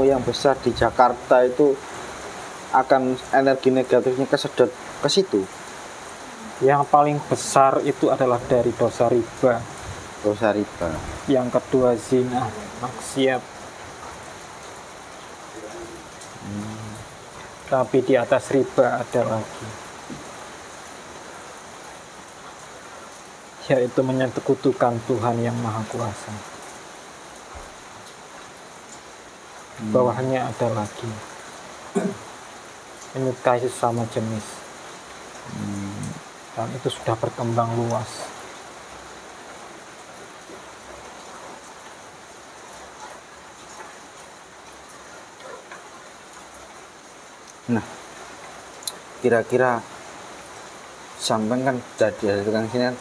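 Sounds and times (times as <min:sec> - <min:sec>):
steady background hiss: 0:00.0 - 0:53.0.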